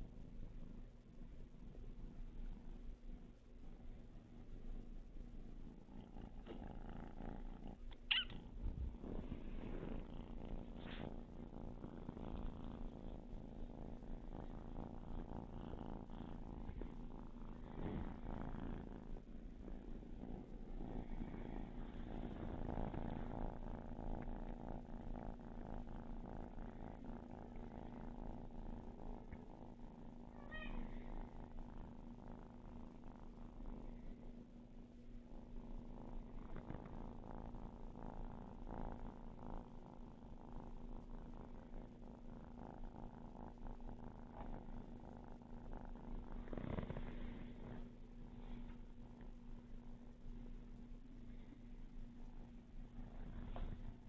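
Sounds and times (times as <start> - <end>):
kitten purring: 0.0 - 54.0.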